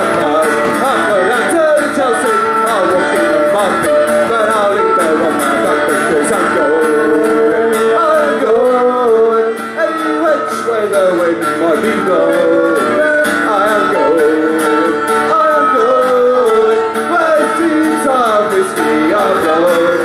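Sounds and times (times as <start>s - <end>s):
fiddle: 0.0s - 20.0s
man singing: 0.0s - 20.0s
mandolin: 0.0s - 20.0s
strummed acoustic guitar: 0.0s - 20.0s.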